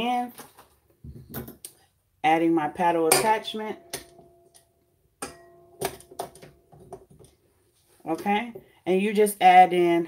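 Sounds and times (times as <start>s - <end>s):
metallic bowl ring: 3.1s - 6.0s.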